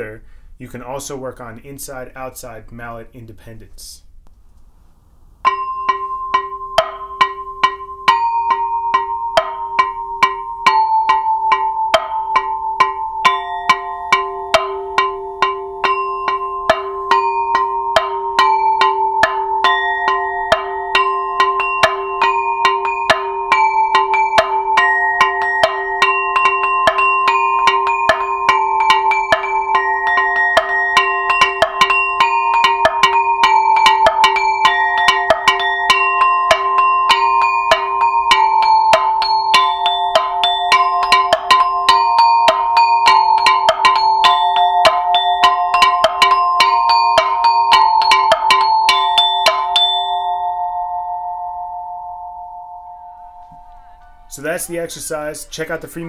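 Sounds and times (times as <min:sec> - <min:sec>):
ringing pipe tones: 0:05.4 - 0:54.4
mallets striking percussion: 0:05.4 - 0:55.7.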